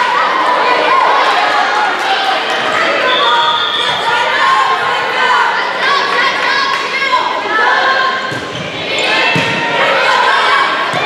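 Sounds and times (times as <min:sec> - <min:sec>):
spectators chattering: 0:00.0 - 0:11.0
referee's whistle: 0:03.0 - 0:04.2.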